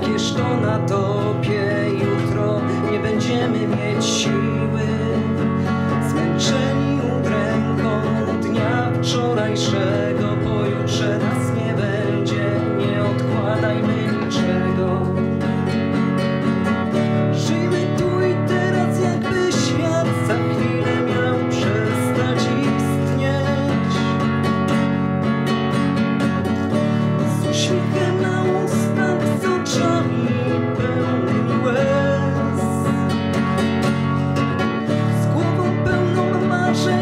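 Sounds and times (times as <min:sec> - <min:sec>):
acoustic guitar strumming: 0:00.0 - 0:37.0.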